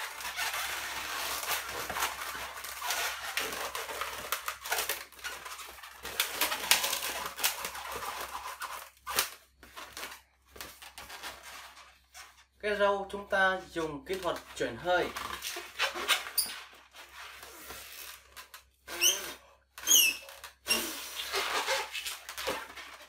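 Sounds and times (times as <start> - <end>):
balloons squeaking and rubbing: 0.0 - 23.0.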